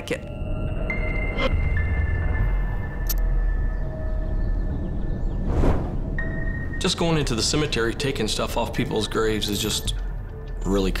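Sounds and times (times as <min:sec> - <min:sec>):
low rumbling drone: 0:00.4 - 0:08.8.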